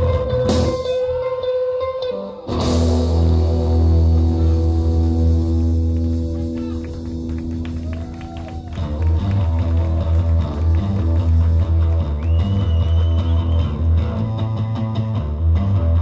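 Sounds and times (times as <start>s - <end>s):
rock band playing live: 0.0s - 16.0s
heavy bass line: 2.5s - 16.0s.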